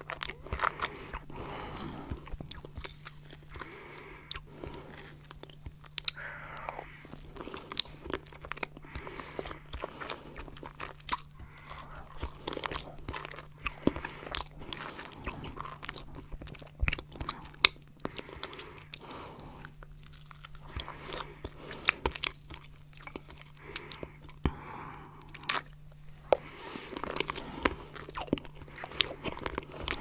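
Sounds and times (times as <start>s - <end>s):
faint low hum: 0.0s - 30.0s
soft chewing with crunches: 0.0s - 30.0s.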